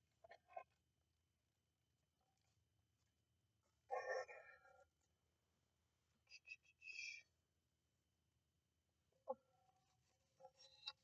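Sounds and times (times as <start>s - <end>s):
woman whispering: 6.3s - 7.3s.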